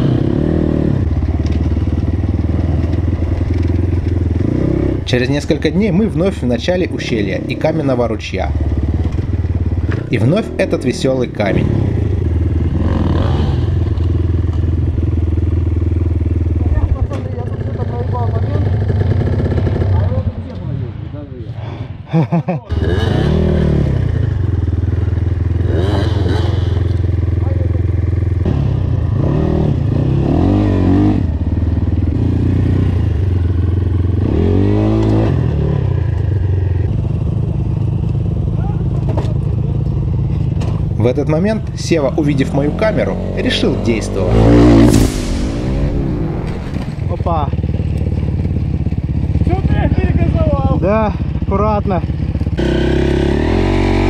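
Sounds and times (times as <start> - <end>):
dirt bike engine revving: 0.0 - 20.8, 22.7 - 37.2, 41.8 - 50.9, 52.0 - 54.0
motorcycle engine idling: 0.7 - 20.5, 24.2 - 30.0, 31.2 - 34.3, 36.0 - 43.3, 47.0 - 54.0.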